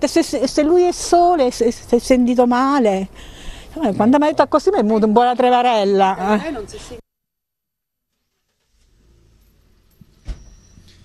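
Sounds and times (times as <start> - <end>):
distant road traffic rumble: 0.0 - 7.0, 8.7 - 11.0.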